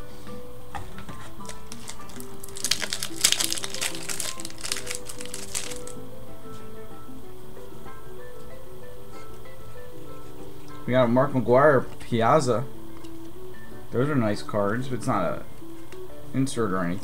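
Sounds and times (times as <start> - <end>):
background music: 0.0 - 17.0
wrapper tearing and crinkling: 1.4 - 5.9.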